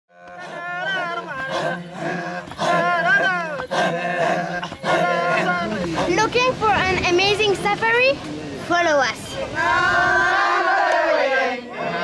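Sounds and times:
men chanting in a group: 0.1s - 6.4s, 9.2s - 12.0s.

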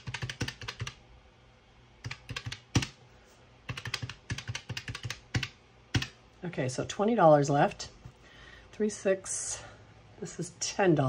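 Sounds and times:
calculator keys clicking: 0.0s - 1.0s, 2.0s - 3.0s, 3.7s - 6.2s.

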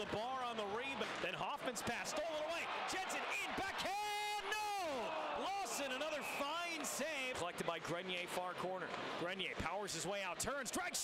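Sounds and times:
excited commentator speaking: 0.0s - 11.0s.

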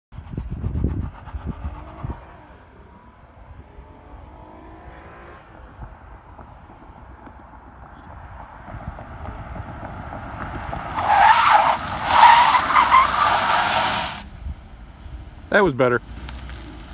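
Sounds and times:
vehicle approaching: 0.1s - 16.9s
tyres squealing: 11.0s - 14.2s.

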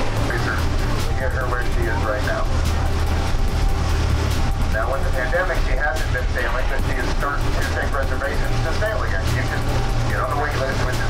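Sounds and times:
boat engine droning: 0.0s - 11.0s
voices talking: 4.7s - 11.0s.

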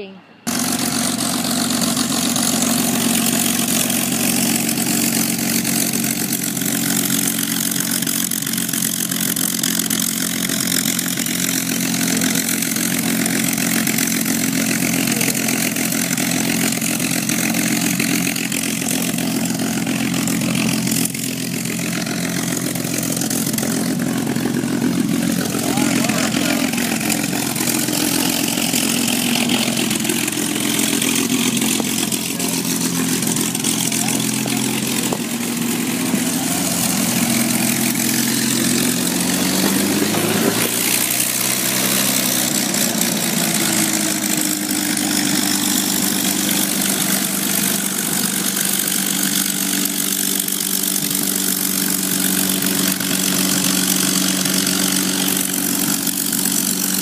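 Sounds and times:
piston aircraft engines droning: 0.0s - 57.0s.

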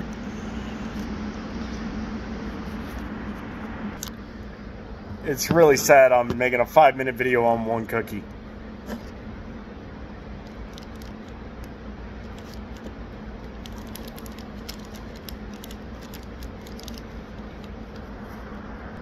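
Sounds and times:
building ventilation hum: 0.0s - 19.0s.

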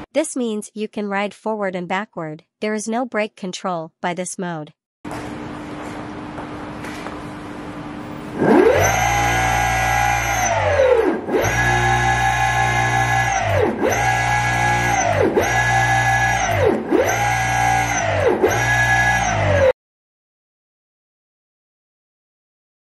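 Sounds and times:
electric motors whining: 8.3s - 19.7s.

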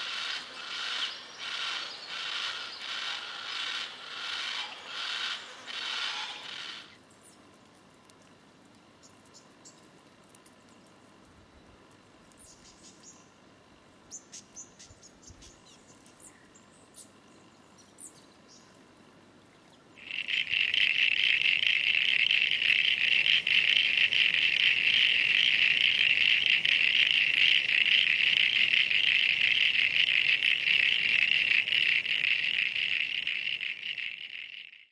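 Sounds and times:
frog calling in rapid trill: 0.0s - 7.0s, 20.0s - 34.9s.

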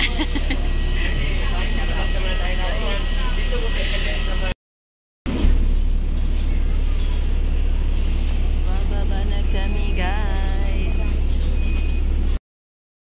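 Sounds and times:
passengers' voices: 0.0s - 4.5s, 6.1s - 12.0s
bus engine rumbling: 0.0s - 4.6s, 5.3s - 12.4s.

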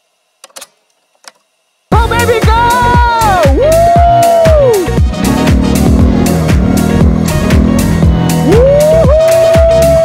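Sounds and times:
dance music with a beat: 2.0s - 10.0s.

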